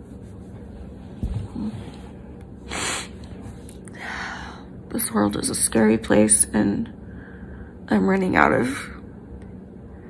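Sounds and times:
hand rubbing hair and shirt: 0.0s - 3.8s
short sniff: 2.7s - 3.3s.

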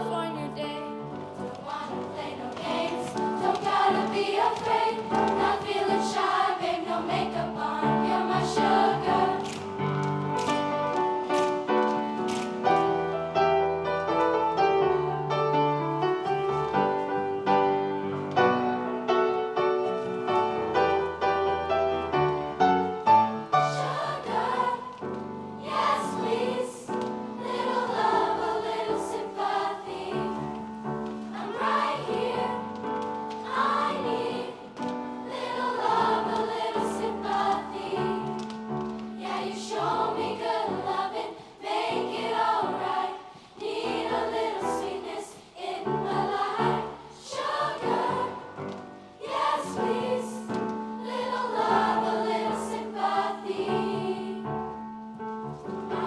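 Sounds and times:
girls' choir singing: 0.0s - 13.2s, 23.3s - 54.8s, 55.6s - 56.0s.

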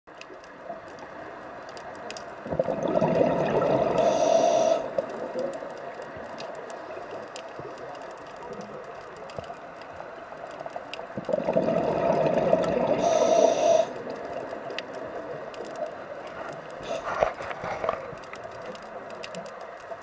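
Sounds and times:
faint clicks: 0.1s - 2.9s, 3.5s - 11.5s, 12.6s - 20.0s
exhaled bubbles underwater: 2.4s - 8.8s, 11.0s - 16.0s
underwater hiss: 2.8s - 5.5s, 11.4s - 15.3s, 16.3s - 18.2s.

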